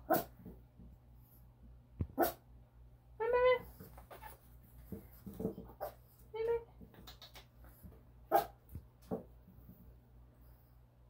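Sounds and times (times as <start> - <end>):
puppy barking: 0.0 - 0.3, 2.2 - 2.4, 8.3 - 8.6.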